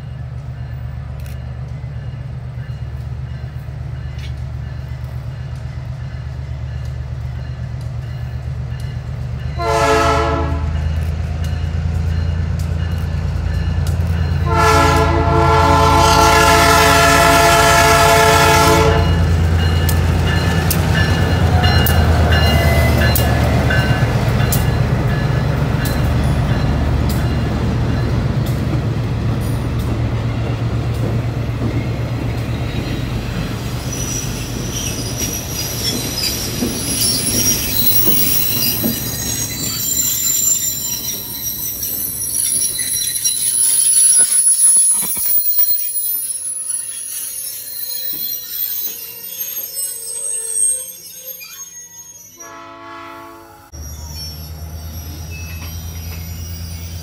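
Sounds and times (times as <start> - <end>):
train wheel noise: 0.0 - 52.5, 53.7 - 57.0
train air horn blast: 9.6 - 10.8, 14.4 - 19.2, 52.4 - 53.8
high-pitched wheel squeal: 33.8 - 57.0.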